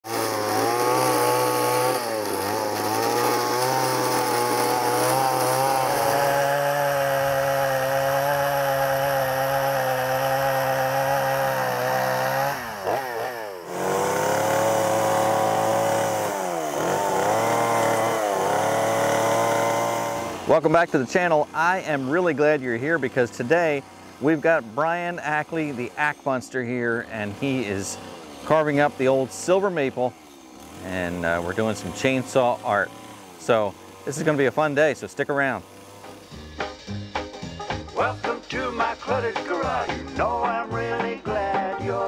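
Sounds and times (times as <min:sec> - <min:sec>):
chainsaw cutting wood: 0:00.0 - 0:42.0.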